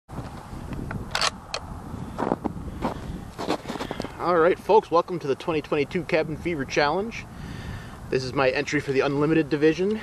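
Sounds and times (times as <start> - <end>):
footsteps crunching in snow: 2.2 - 4.2.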